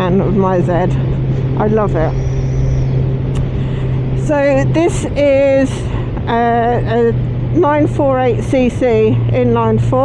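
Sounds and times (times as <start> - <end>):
motorcycle engine cruising hum: 0.0 - 10.0
wind and road noise: 0.0 - 10.0.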